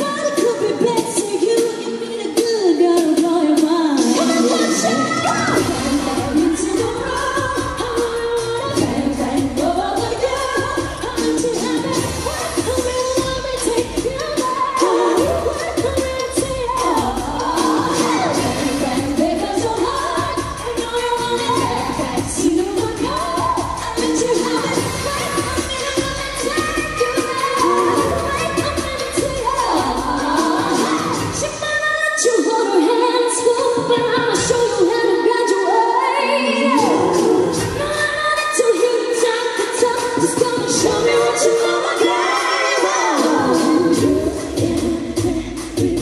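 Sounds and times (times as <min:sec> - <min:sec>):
backing music with steady beat: 0:00.0 - 0:46.0
female vocal group singing: 0:00.0 - 0:46.0.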